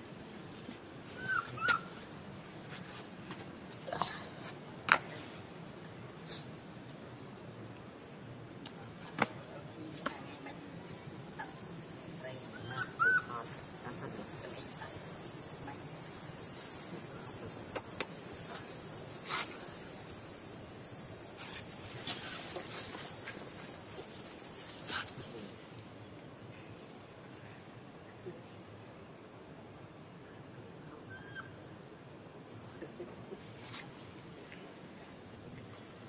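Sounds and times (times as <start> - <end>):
high-pitched insect hiss: 11.3 - 25.6.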